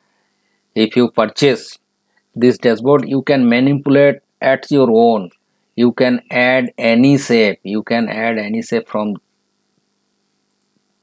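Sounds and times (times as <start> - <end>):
faint steady hum: 0.0 - 11.0
person speaking: 0.8 - 1.8, 2.4 - 9.2.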